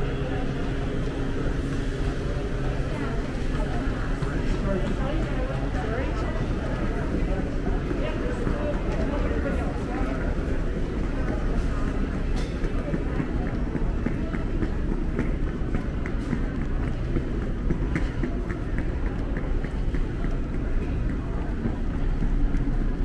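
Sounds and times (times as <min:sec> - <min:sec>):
indistinct chatter: 0:00.0 - 0:23.0
low background hum: 0:00.0 - 0:23.0.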